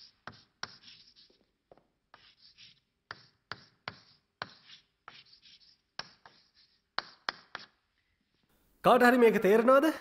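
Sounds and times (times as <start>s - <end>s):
chalk writing on blackboard: 0.0s - 8.5s.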